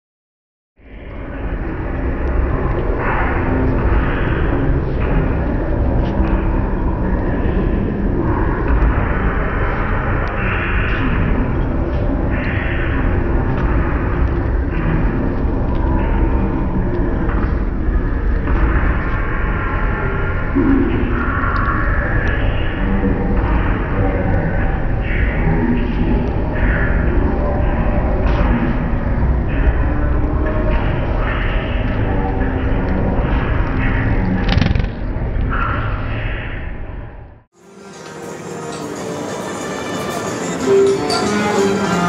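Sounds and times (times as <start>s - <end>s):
steady low rumble: 0.8s - 37.5s
dense bed of noise: 0.8s - 42.0s.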